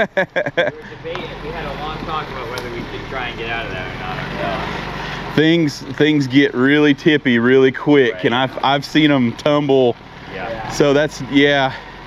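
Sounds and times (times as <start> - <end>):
truck engine idling: 0.0 - 12.0
indistinct talking: 0.7 - 11.8.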